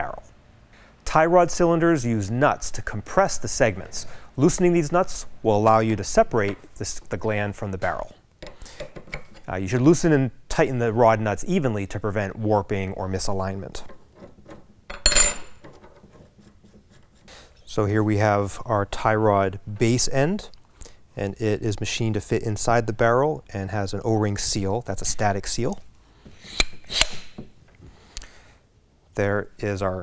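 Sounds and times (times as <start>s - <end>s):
ringing metal clink: 14.9s - 15.6s
metal tube rubbing: 16.0s - 17.7s.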